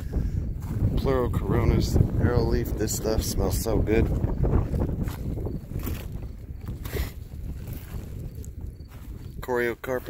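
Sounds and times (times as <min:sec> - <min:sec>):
footsteps on gravel: 0:00.0 - 0:10.0
wind buffeting microphone: 0:00.0 - 0:10.0.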